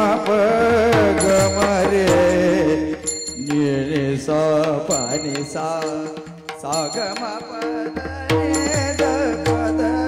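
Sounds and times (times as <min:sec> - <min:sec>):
man singing into a microphone: 0:00.0 - 0:10.0
small hand cymbals ringing: 0:01.2 - 0:04.0, 0:04.9 - 0:09.8.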